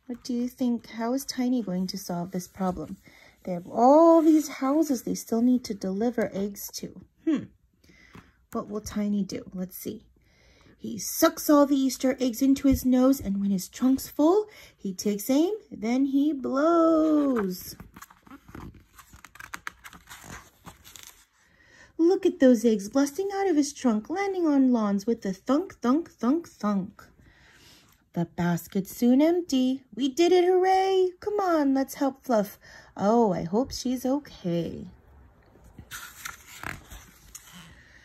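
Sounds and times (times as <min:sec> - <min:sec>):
paper page turning: 0:17.3 - 0:21.3, 0:35.8 - 0:37.7.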